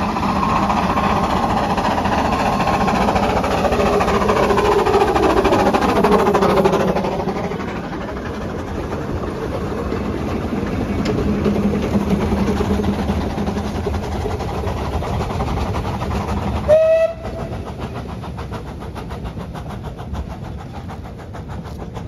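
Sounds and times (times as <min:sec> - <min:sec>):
steam locomotive running: 0:00.0 - 0:22.0
wheels clicking on track: 0:00.0 - 0:22.0
train whistle blast: 0:16.7 - 0:17.5.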